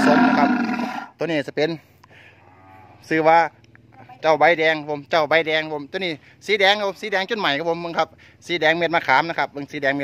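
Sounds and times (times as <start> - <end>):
cattle mooing: 0.0 - 1.1, 2.4 - 3.0.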